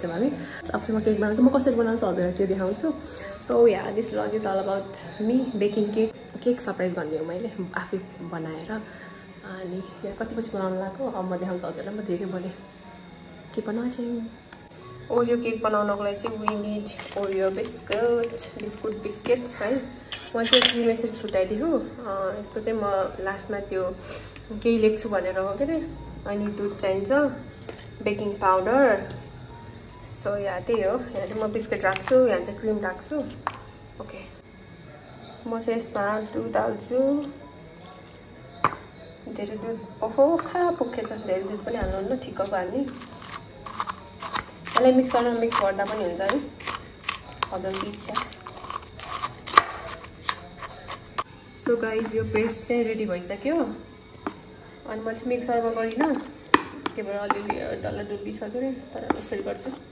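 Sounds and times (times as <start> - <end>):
metal spoon clattering in bowl: 17.9 - 20.9
metal spoon scraping plastic bowl: 42.9 - 51.3.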